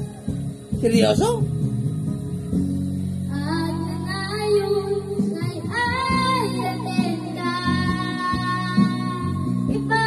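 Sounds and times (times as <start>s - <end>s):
karaoke backing track: 0.0s - 10.0s
girl singing into microphone: 3.3s - 10.0s.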